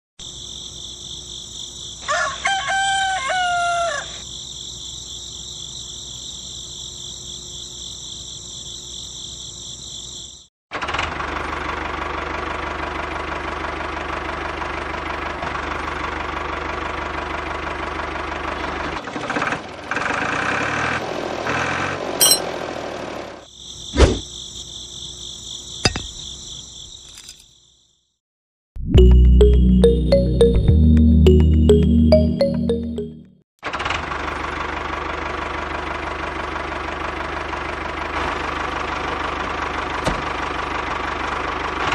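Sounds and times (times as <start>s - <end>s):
crickets chirping: 0.2s - 10.5s, 23.5s - 28.2s
rooster crowing: 2.0s - 4.3s.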